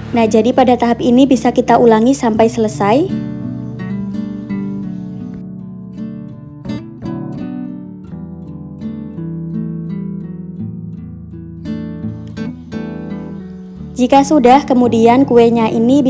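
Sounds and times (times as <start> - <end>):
plucked acoustic guitar: 2.4 - 16.0.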